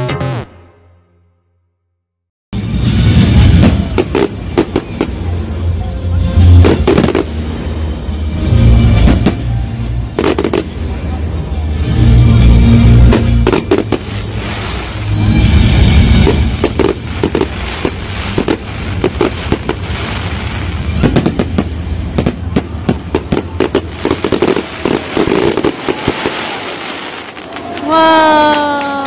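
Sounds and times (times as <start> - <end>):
loud music with heavy bass: 0.0 - 0.7
fireworks bangs and crackling: 2.6 - 29.0.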